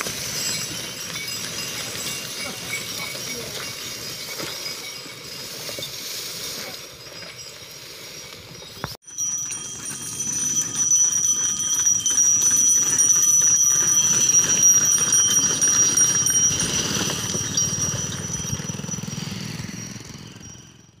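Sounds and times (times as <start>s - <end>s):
cart wheels rattling on road: 0.0s - 21.0s
high-pitched ringing tone: 0.0s - 21.0s.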